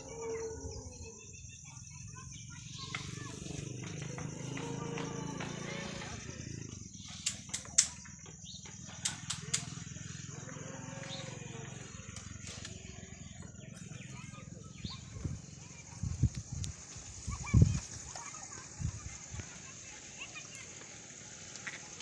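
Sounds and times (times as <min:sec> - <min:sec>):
sharp clicks: 0:07.2 - 0:08.1, 0:09.0 - 0:09.8.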